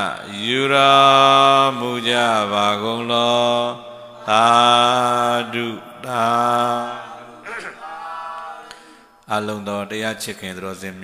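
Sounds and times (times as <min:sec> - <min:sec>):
man chanting into a microphone: 0:00.0 - 0:07.7, 0:09.3 - 0:11.0.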